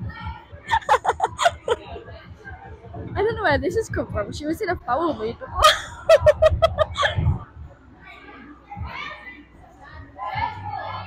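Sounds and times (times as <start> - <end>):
girls chattering: 0.6 - 2.7
girl laughing: 0.7 - 2.0, 5.6 - 7.4.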